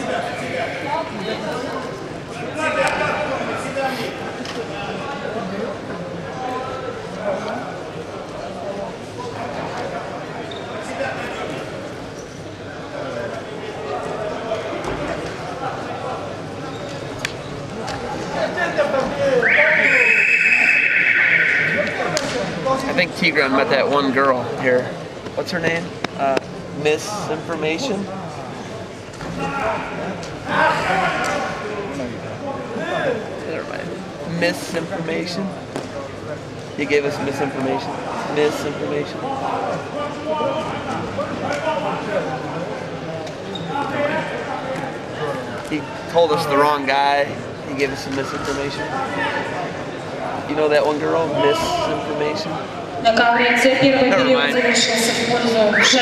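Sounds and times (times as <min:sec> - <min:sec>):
indistinct talking: 0:00.0 - 0:56.0
voices in a hall: 0:00.0 - 0:56.0.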